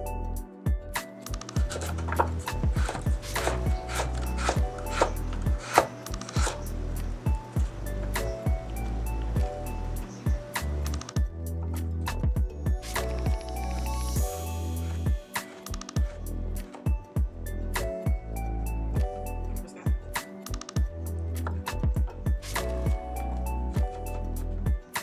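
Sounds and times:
background music: 0.0 - 25.0
knife chopping on cutting board: 1.6 - 6.7.

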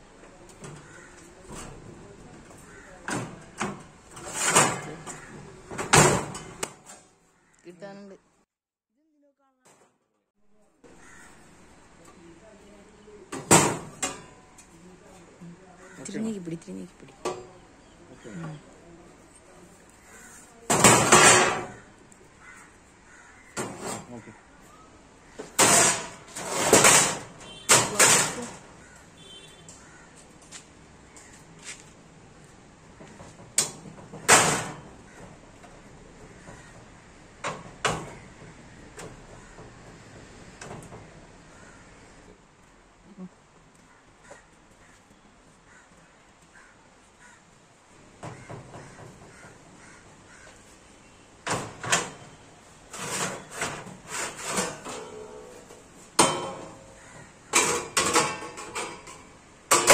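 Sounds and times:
crows cawing: 0.6 - 1.6, 2.3 - 3.5, 4.9 - 5.7, 7.2 - 7.8, 10.9 - 11.9, 15.6 - 16.4, 19.9 - 20.7, 21.6 - 25.6, 28.7 - 31.7, 34.9 - 37.1, 38.1 - 39.9, 41.4 - 42.2, 43.7 - 50.8, 56.8 - 58.0
metal sheet scraping and clattering: 3.2 - 7.0, 20.7 - 21.8, 23.6 - 24.1, 25.4 - 28.7, 52.9 - 59.9
sheet metal folder clanking: 57.5 - 59.9.

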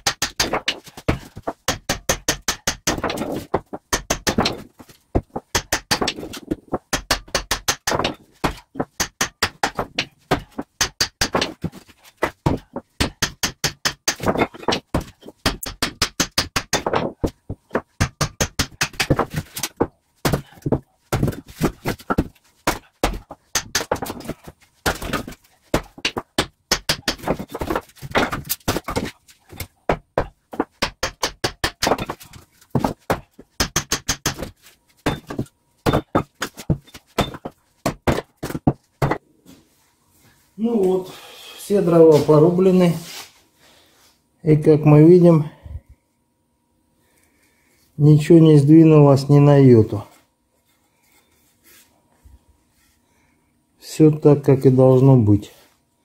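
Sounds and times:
axe chopping logs: 0.0 - 39.2.

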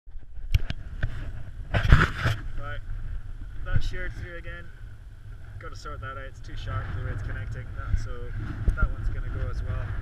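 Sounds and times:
wind rumbling on microphone: 0.1 - 10.0
camera handling scrape: 0.5 - 2.6.

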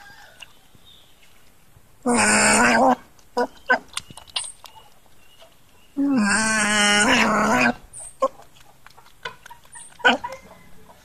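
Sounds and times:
animal drawn-out call: 2.0 - 3.9, 6.0 - 8.5, 9.4 - 11.0.

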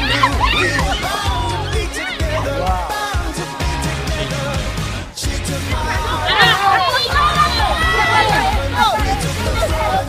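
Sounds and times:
children shouting and cheering: 0.0 - 10.0
pop music: 0.0 - 10.0.

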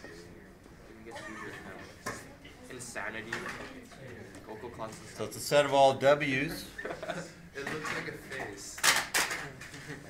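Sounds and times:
students talking: 0.0 - 10.0.

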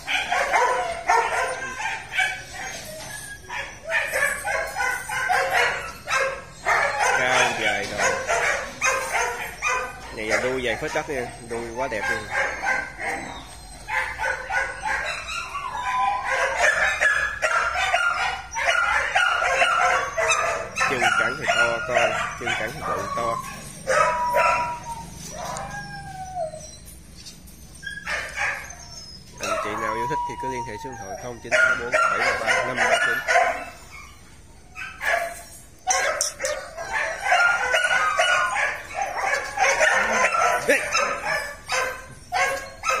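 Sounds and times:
dog barking and whining: 0.0 - 43.0.

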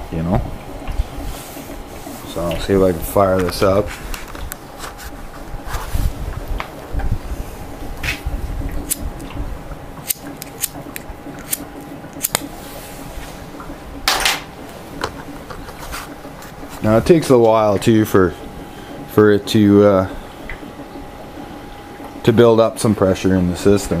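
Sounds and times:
faint steady hum: 0.0 - 24.0.

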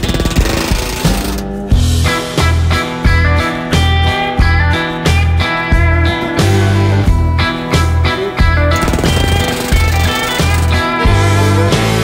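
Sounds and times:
pneumatic rivet gun hammering: 0.0 - 1.6, 8.8 - 10.8
guitar music: 0.0 - 12.0.

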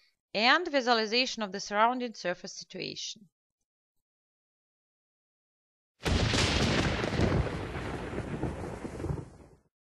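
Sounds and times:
thunder rumbling: 6.0 - 9.7.

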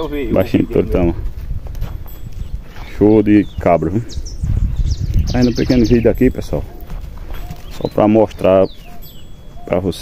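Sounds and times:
hooves and footsteps on dirt: 0.0 - 10.0.

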